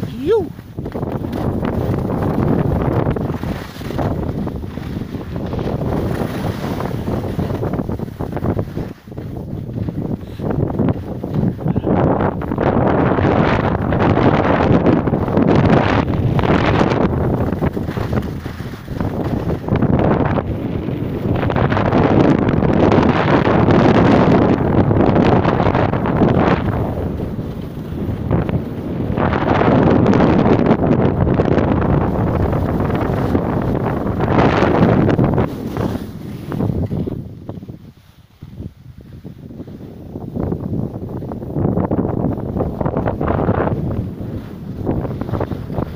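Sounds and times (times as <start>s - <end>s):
skis on packed snow: 0.0s - 11.7s, 12.7s - 20.4s, 31.8s - 45.9s
wind rushing over microphone: 0.0s - 45.9s.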